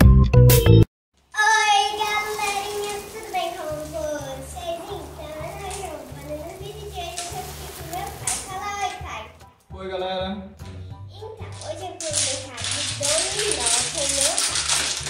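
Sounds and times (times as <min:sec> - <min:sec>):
dominoes shuffled on glass table: 0:11.6 - 0:15.0.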